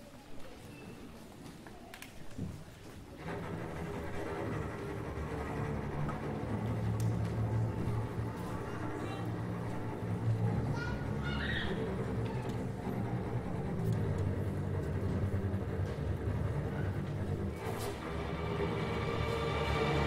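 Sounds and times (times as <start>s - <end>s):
string orchestra playing: 3.2s - 20.0s.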